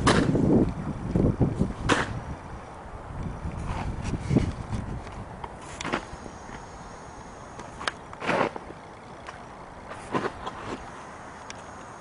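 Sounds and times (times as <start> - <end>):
wind noise on microphone: 0.0 - 8.1.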